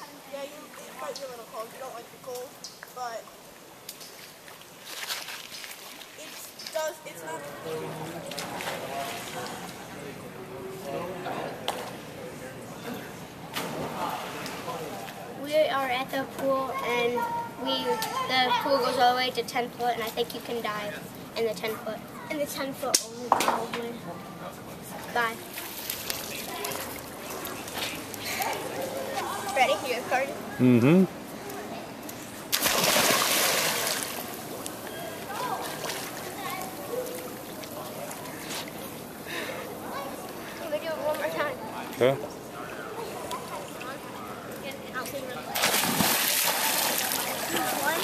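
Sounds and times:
big splash into pool: 32.5 - 34.4, 45.5 - 48.0
water sloshing: 32.5 - 39.0, 45.5 - 48.0.

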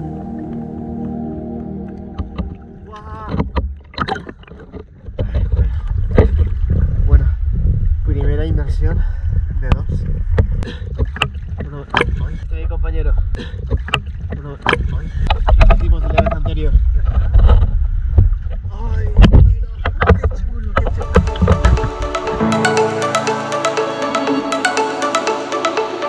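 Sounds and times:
sea water lapping and splashing: 0.0 - 8.0
low rumble of waves: 0.0 - 22.4
water slapping camera: 1.8 - 8.0
wind on microphone: 5.1 - 11.6, 14.2 - 22.4.

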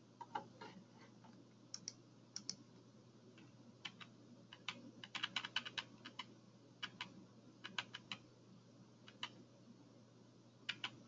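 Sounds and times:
low steady hum: 0.0 - 11.0
typing on computer keyboard: 3.8 - 8.2, 9.1 - 9.4, 10.7 - 11.0.

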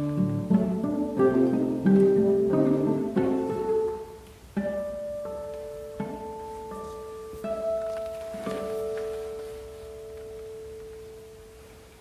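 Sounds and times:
classical guitar chord: 0.0 - 12.0.

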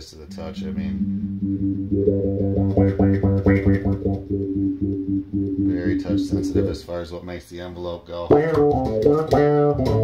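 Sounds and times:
bass guitar with wah filter: 0.1 - 6.8, 8.3 - 10.0.

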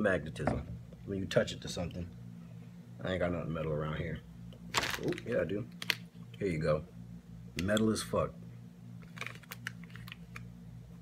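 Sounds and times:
plastic bag crinkling: 4.8 - 6.0, 9.0 - 10.3.

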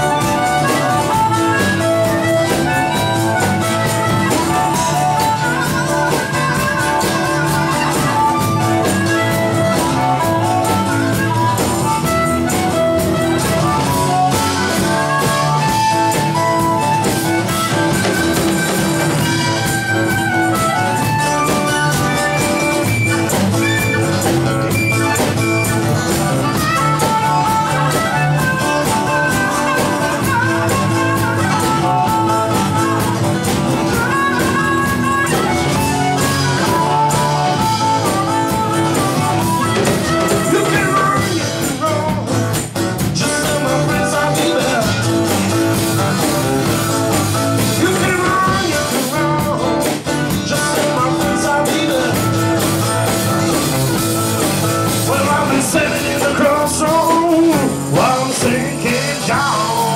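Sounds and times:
acoustic guitar: 0.0 - 59.9
harmonica solo with bending notes: 0.0 - 59.9
upright double bass: 0.0 - 59.9.

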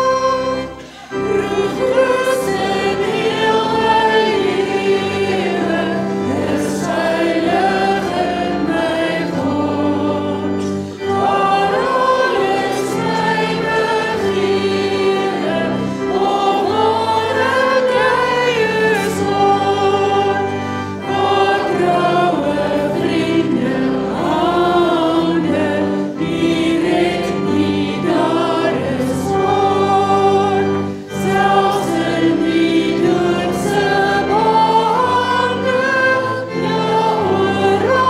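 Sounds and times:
congregation singing: 0.0 - 38.0.

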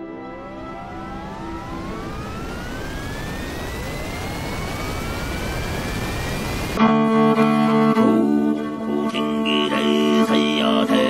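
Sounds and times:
jet engine spooling up: 0.0 - 6.8
rising whine: 0.0 - 6.8.

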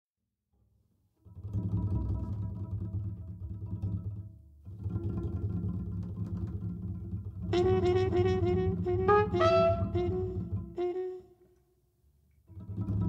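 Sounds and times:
double bass playing: 1.4 - 11.3.

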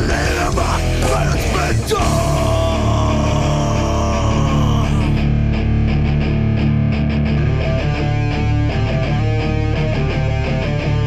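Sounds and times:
hardcore band playing loud: 0.0 - 11.0.

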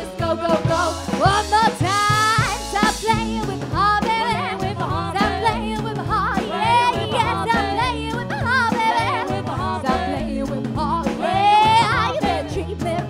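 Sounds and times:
rockabilly band playing: 0.0 - 13.0.

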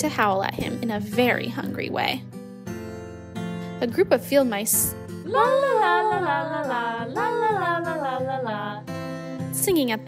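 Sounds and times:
soft acoustic guitar music: 0.0 - 10.0
high voice singing wordlessly: 5.2 - 9.1.

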